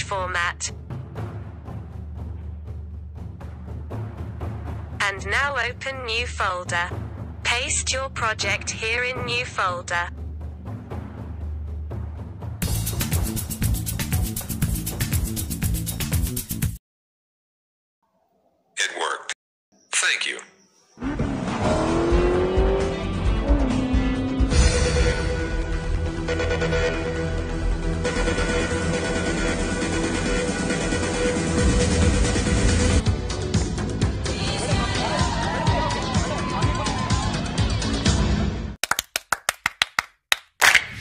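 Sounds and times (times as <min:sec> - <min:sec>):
music playing: 0:12.6 - 0:16.8
car engine revving: 0:21.0 - 0:24.8
rapid sharp clap-like hits: 0:38.8 - 0:41.0.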